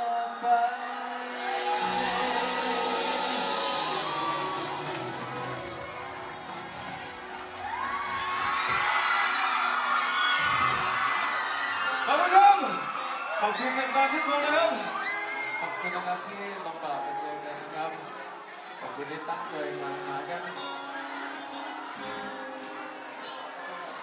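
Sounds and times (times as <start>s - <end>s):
live band music: 0.0s - 18.8s, 19.4s - 24.0s
crowd cheering and screaming: 0.0s - 24.0s.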